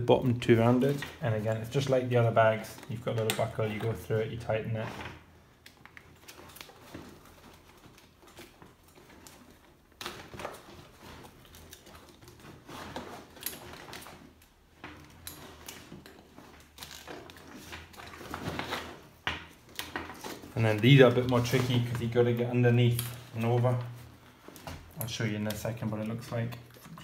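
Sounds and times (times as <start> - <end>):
nylon straps rustling: 0.5 - 27.0.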